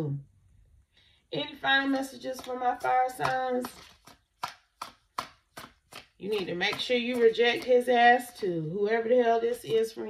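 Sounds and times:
cards slapping while shuffled: 2.3 - 7.9.

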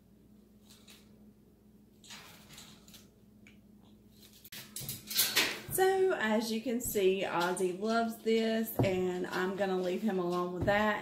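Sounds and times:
woman speaking: 5.7 - 11.0.

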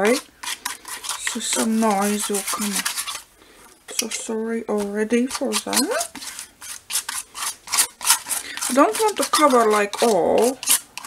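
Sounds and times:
palette knife scraping paper: 0.0 - 3.3, 4.8 - 11.0.

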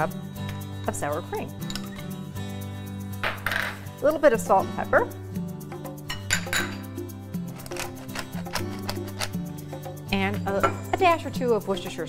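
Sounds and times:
background music: 0.0 - 12.0
metal spoon scraping glass bowl: 7.4 - 9.4.

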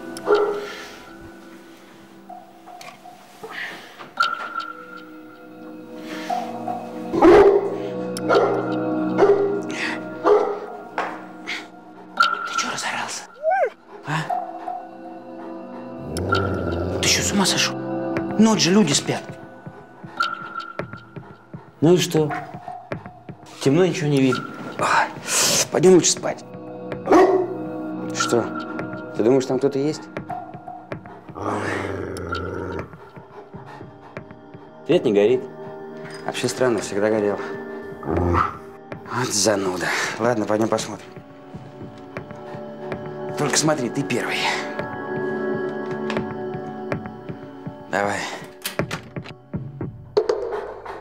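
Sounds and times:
background music: 0.0 - 51.0
dog growling low: 16.0 - 17.4, 31.1 - 34.2, 38.0 - 38.7.

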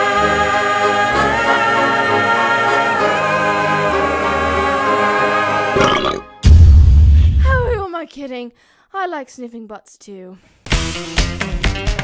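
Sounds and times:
long loud low burp: 5.8 - 6.4.

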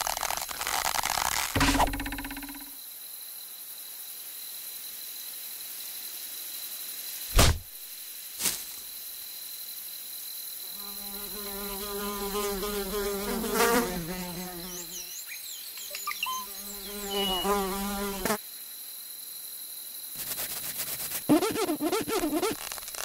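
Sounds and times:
fly buzzing: 10.8 - 15.1, 16.4 - 18.4, 20.2 - 23.0.

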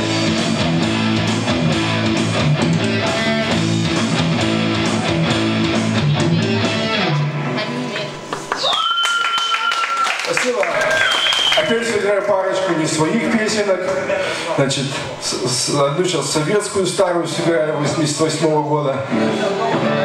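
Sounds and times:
low bass line: 0.0 - 7.4
live rock band playing: 0.0 - 8.5, 19.0 - 20.0
electric guitar: 0.0 - 8.7, 18.8 - 20.0.

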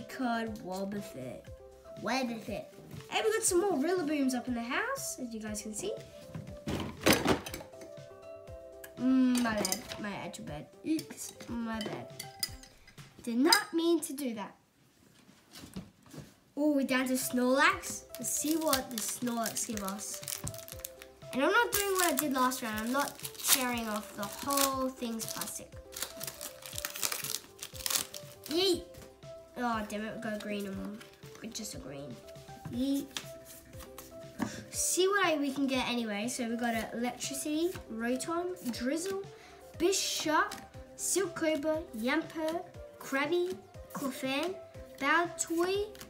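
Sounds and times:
background music: 0.0 - 14.8, 15.5 - 46.0
foil wrapper crinkling: 18.1 - 28.6
cards rustling and thunk: 18.2 - 28.6.

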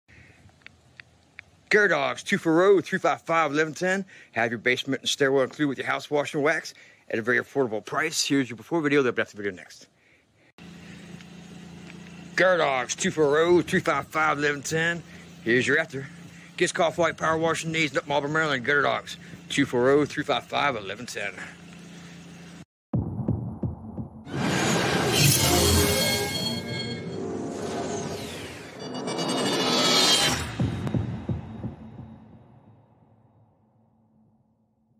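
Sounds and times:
low even hum outdoors: 0.1 - 22.6
deep thuds dropping in pitch: 22.9 - 24.3.

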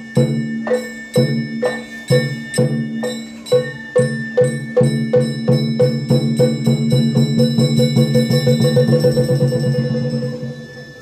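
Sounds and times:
held high flute note: 0.0 - 6.0, 7.8 - 11.0
drum and metal percussion beating: 0.0 - 11.0.

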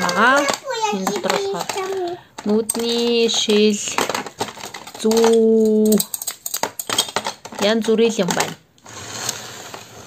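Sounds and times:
plastic toys clattering: 0.0 - 10.0.

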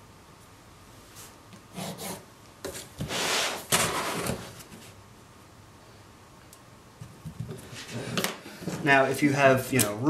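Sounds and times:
ruler and pencil scraping plastic sheet: 1.7 - 4.7.

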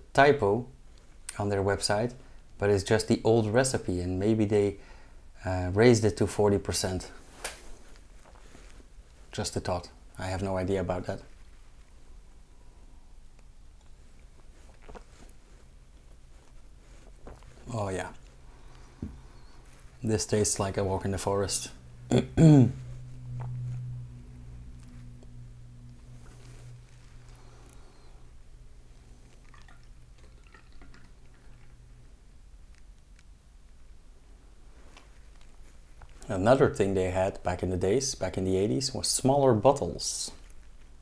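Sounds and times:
low room hum: 0.0 - 41.0
liquid trickling and dripping: 29.2 - 32.0
man sipping and swallowing: 29.3 - 31.7.

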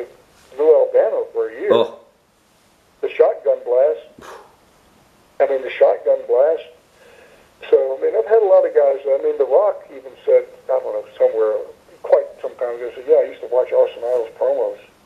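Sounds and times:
man talking over telephone: 0.0 - 2.0, 3.0 - 4.2, 5.4 - 6.8, 7.6 - 14.9.

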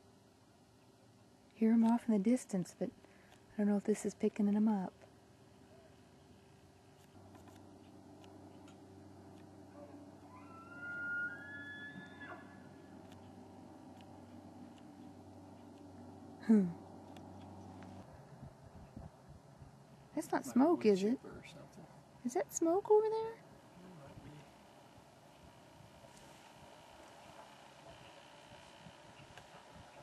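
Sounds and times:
distant elk bugling: 8.3 - 18.0.

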